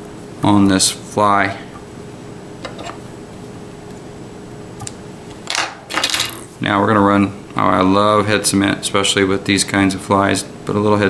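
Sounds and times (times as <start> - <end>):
steady low hum: 0.0 - 11.0
tools clattering: 5.5 - 6.5.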